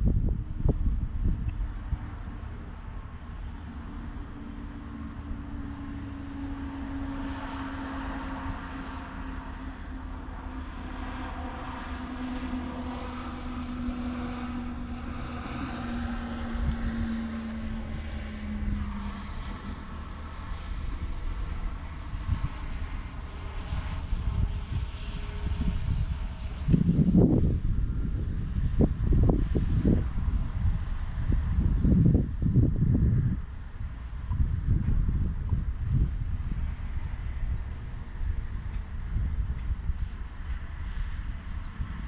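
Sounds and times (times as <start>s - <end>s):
airplane engine drone: 0.0s - 42.0s
wind rumble on microphone: 0.0s - 42.0s.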